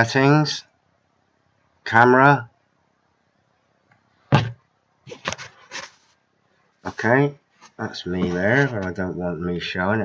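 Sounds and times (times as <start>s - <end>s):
knock on laptop: 4.3s - 4.6s.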